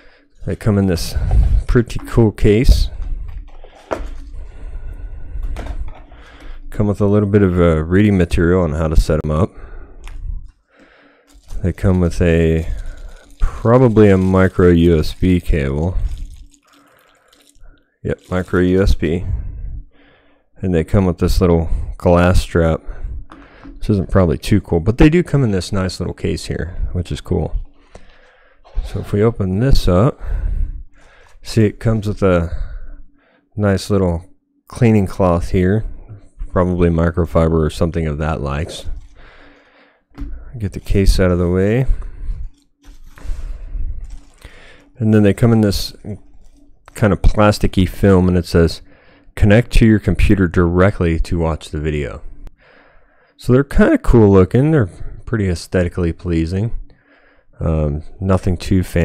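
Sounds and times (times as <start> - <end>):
faint steady hum: 0.0 - 59.0
man's voice: 0.4 - 3.2, 5.5 - 9.6, 11.5 - 16.4, 18.1 - 19.6, 20.6 - 27.7, 28.7 - 30.6, 31.4 - 32.8, 33.6 - 39.1, 40.2 - 42.4, 44.4 - 46.2, 46.9 - 52.3
plastic bag crinkling: 10.8 - 19.1, 38.5 - 48.0.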